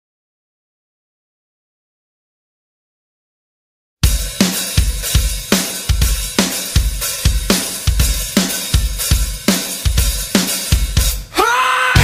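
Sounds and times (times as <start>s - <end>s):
drum kit playing steady beat: 4.0s - 12.0s.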